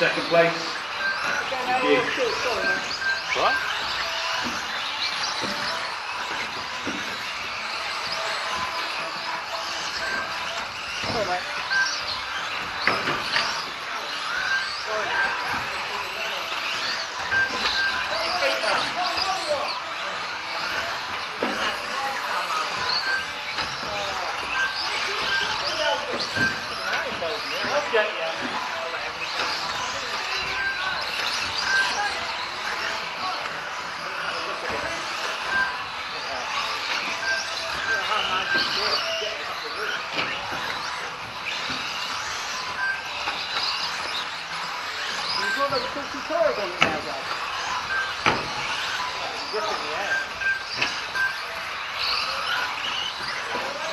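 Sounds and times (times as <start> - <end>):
people talking in a hall: 12.6 - 53.9.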